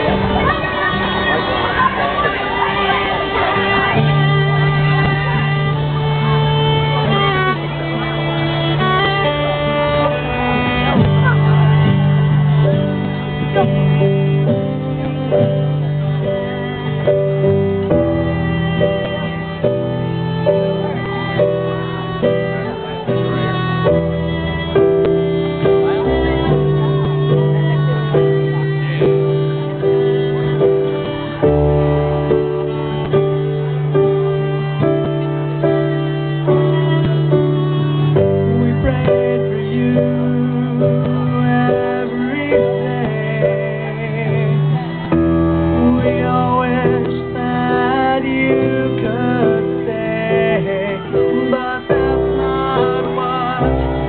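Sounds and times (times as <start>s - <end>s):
guitar accompaniment: 0.0s - 54.0s
keyboard accompaniment: 0.0s - 54.0s
steady held notes: 0.0s - 54.0s
violin slow melody: 0.0s - 54.0s.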